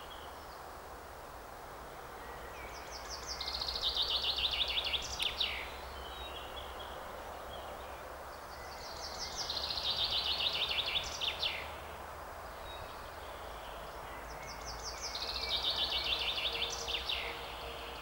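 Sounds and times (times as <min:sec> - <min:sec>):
low outdoor hiss: 0:00.0 - 0:18.0
songbird singing: 0:00.0 - 0:18.0.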